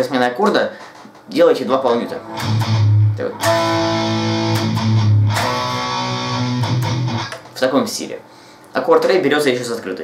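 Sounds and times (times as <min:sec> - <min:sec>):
electric guitar chords: 0:02.0 - 0:07.6
palm-muted guitar chugs: 0:02.1 - 0:07.5.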